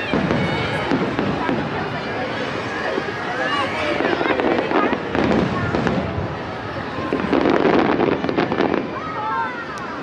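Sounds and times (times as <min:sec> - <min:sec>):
crowd chatter: 0:00.0 - 0:10.0
fireworks bursting: 0:00.0 - 0:10.0
sharp firework crack: 0:03.9 - 0:06.4, 0:07.0 - 0:09.1.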